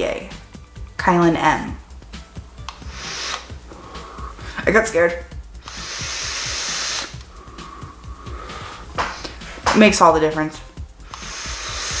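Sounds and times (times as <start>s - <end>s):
air rushing through atomizer: 2.2s - 9.6s, 10.9s - 12.0s
vapour blown out: 2.6s - 4.6s, 5.6s - 9.4s, 11.0s - 12.0s.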